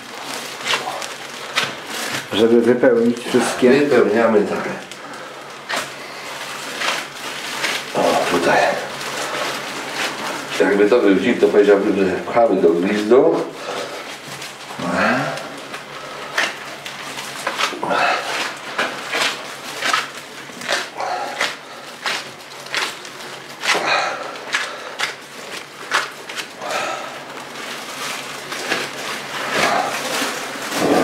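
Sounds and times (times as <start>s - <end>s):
hands squelching wet minced meat: 0.0s - 12.0s, 13.0s - 31.0s.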